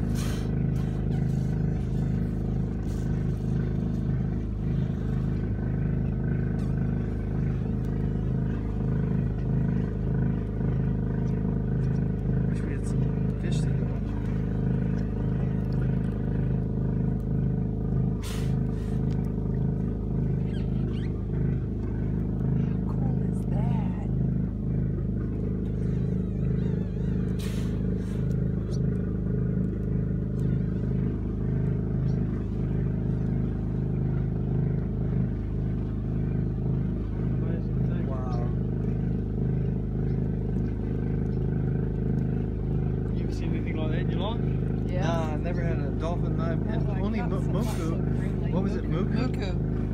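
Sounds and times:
generator engine drone: 0:00.0 - 0:49.9.

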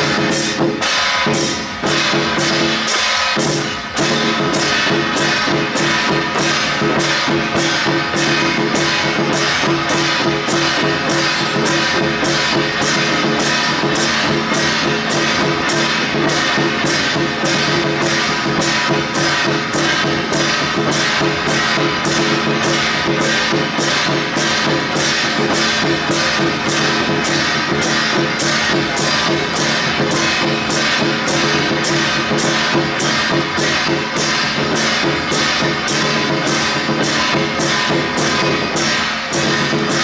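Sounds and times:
hand cymbals: 0:00.0 - 0:40.0
large barrel drums beating: 0:00.0 - 0:40.0.

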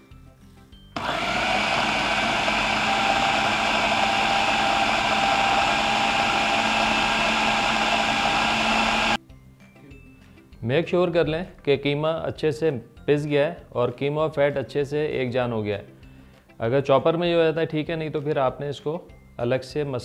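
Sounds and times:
food processor whirring: 0:01.0 - 0:09.2.

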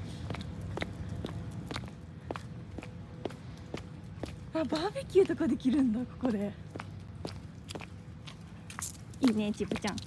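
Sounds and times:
footsteps on paved path: 0:00.0 - 0:10.0.

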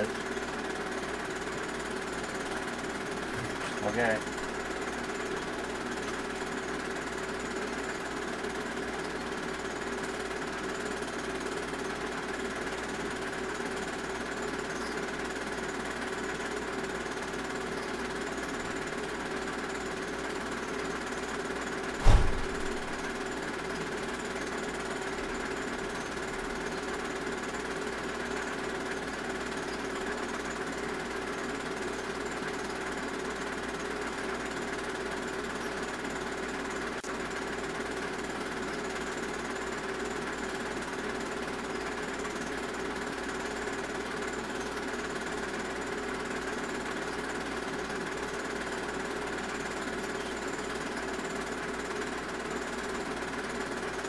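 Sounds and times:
machine running hum: 0:12.5 - 0:30.9
deep thump: 0:22.0 - 0:23.2.

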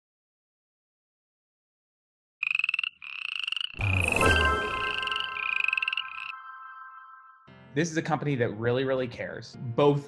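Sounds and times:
frog croaking trills: 0:02.4 - 0:07.0.

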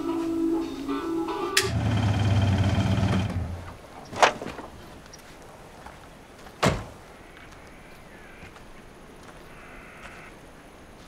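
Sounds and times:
music: 0:00.0 - 0:01.7
car engine running: 0:01.6 - 0:03.7.

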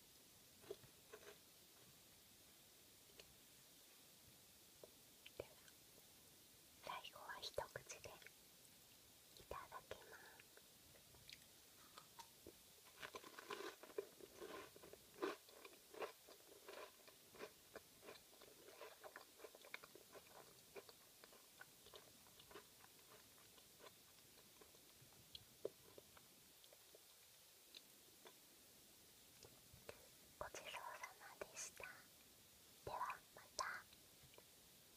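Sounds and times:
crisp crunches of chewing wafer: 0:12.9 - 0:24.0.

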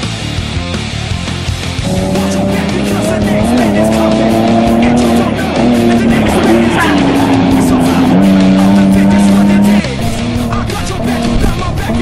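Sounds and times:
rock music with drums: 0:00.0 - 0:12.0.

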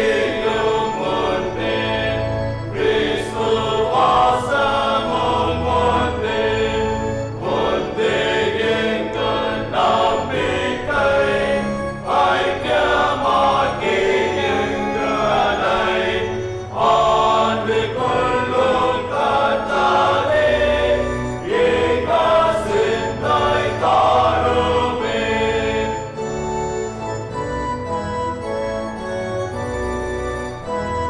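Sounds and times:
congregation singing a hymn: 0:00.0 - 0:29.6
organ accompaniment: 0:00.0 - 0:31.0.

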